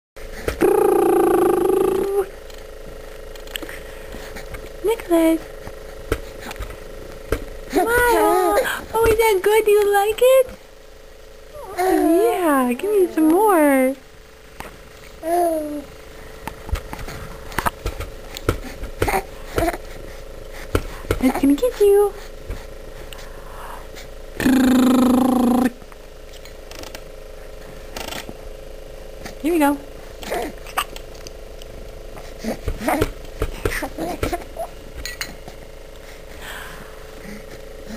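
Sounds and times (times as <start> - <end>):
faint steady hum: 0.2 - 37.9
person humming: 0.6 - 2.3, 24.4 - 25.8
voice holding high note: 0.6 - 2.3.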